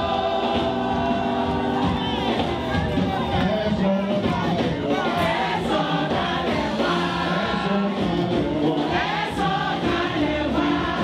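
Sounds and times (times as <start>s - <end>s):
gospel choir singing with backing: 0.0s - 11.0s.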